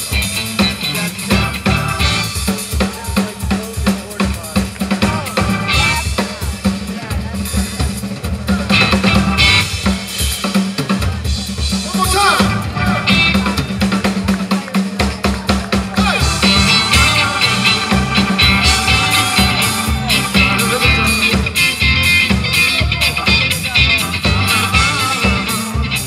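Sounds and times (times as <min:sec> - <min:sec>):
drum kit beat: 0:00.0 - 0:26.0
live blues-rock band: 0:00.0 - 0:26.0
people shouting: 0:11.9 - 0:13.5, 0:15.9 - 0:21.4.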